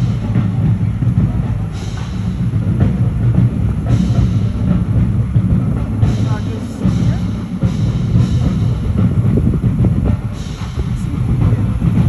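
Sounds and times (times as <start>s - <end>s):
bass drums: 0.0s - 12.0s
cymbal crash: 0.0s - 12.0s
marching drumline cadence: 0.0s - 12.0s.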